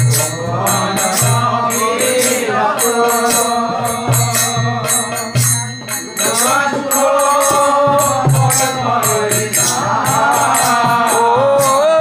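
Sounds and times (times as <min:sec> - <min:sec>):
man singing devotional chant: 0:00.0 - 0:12.0
percussion beat: 0:00.0 - 0:12.0.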